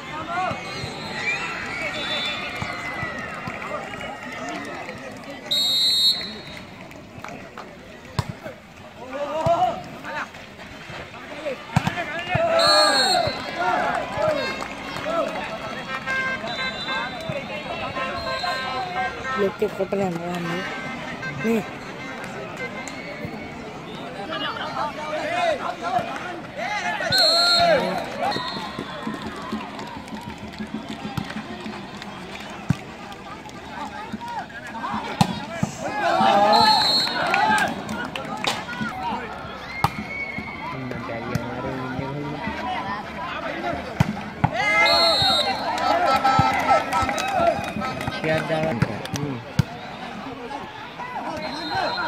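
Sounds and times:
spectators shouting and cheering: 0:00.0 - 0:52.0.

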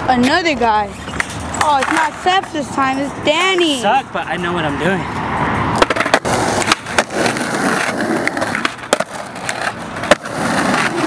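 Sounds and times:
skateboard wheels rolling on concrete: 0:00.0 - 0:11.0
skateboard clacks: 0:01.6 - 0:02.6, 0:05.8 - 0:11.0.

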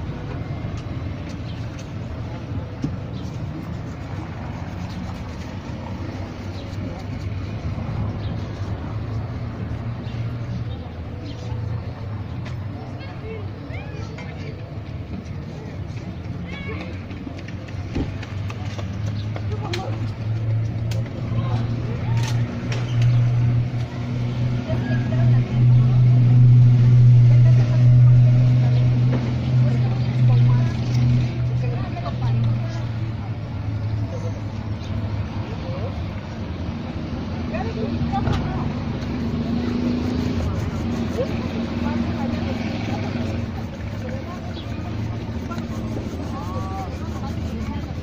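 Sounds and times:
rubbing on leather shoe: 0:03.1 - 0:09.1, 0:38.0 - 0:48.0
vehicle engine running: 0:36.7 - 0:48.0.

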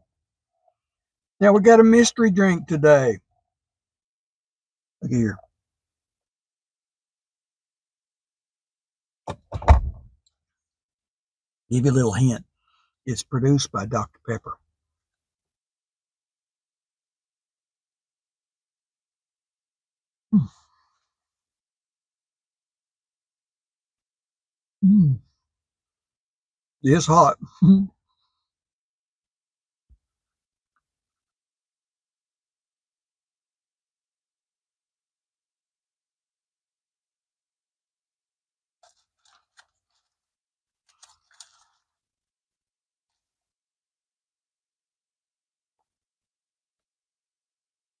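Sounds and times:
crunching from chewing fried fish: 0:38.8 - 0:42.0.

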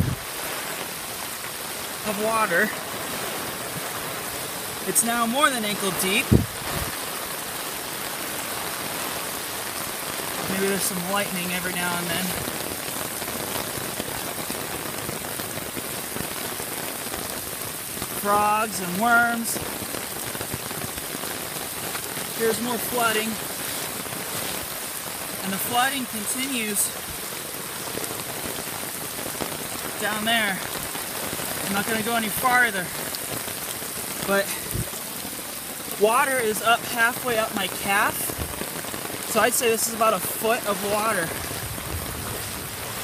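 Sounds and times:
heavy rain on standing water: 0:00.0 - 0:43.0.

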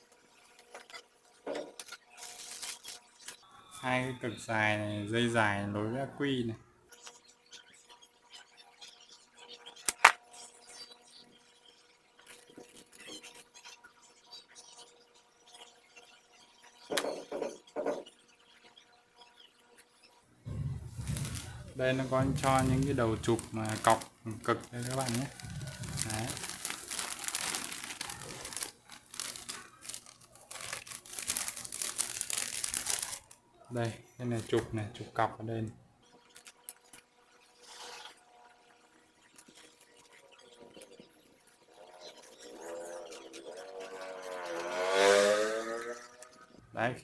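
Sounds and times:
cable rustling: 0:01.8 - 0:03.4, 0:20.5 - 0:35.1
plastic bag crinkling: 0:02.1 - 0:03.4, 0:20.5 - 0:35.0.

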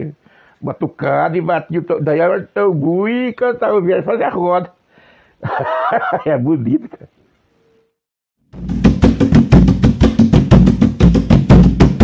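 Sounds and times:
fast deep drum beat: 0:08.6 - 0:12.0.

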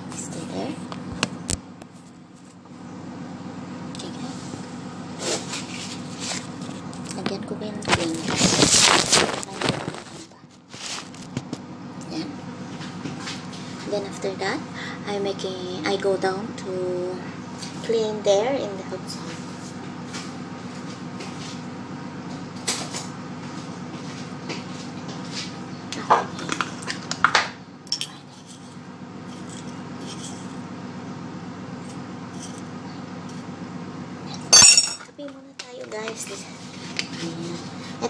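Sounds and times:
steady low hum: 0:00.0 - 0:38.0
spoon jar and mug clinking: 0:34.5 - 0:35.0.

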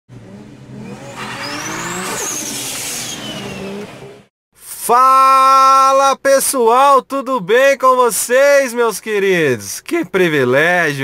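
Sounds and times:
car engine revving: 0:00.1 - 0:04.3
rushing whoosh: 0:00.8 - 0:04.2
high whistle: 0:01.4 - 0:03.9.

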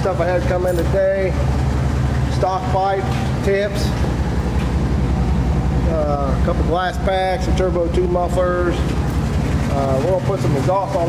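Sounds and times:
low mechanical rumble with pulse: 0:00.0 - 0:11.0.

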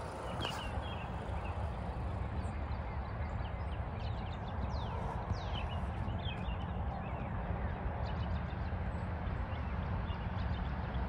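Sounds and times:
small birds chirping: 0:00.0 - 0:07.4
wind buffeting microphone: 0:00.0 - 0:11.0.

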